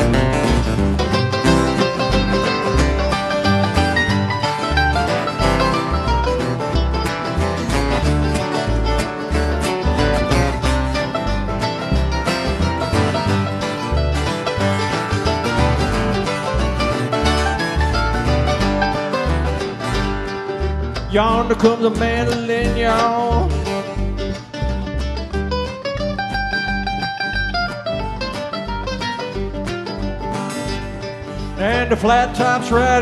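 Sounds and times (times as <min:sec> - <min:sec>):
acoustic guitars strummed and picked: 0:00.0 - 0:33.0
upright bass: 0:00.0 - 0:33.0.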